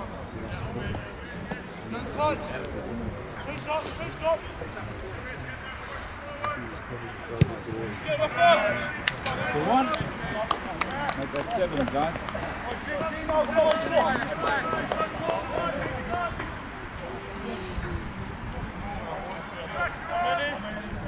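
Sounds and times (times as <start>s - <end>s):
people shouting calls: 8.0s - 11.1s, 12.6s - 16.6s, 19.5s - 20.8s.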